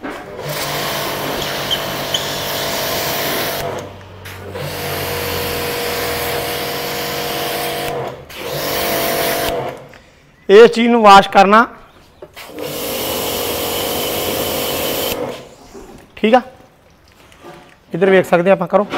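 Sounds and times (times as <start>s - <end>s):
pressure washer motor: 0.0s - 9.9s, 12.4s - 15.5s.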